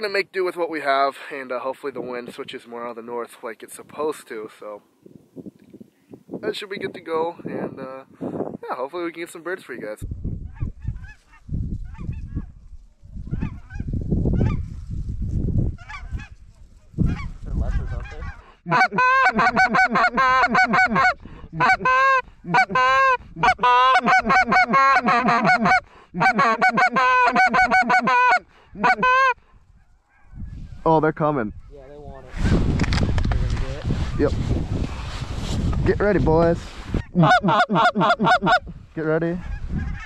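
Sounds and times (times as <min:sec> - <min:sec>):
wind buffeting microphone: 0:05.0 - 0:08.8, 0:09.7 - 0:18.5, 0:29.4 - 0:37.2, 0:38.5 - 0:40.0
loud goose honks: 0:17.9 - 0:29.4.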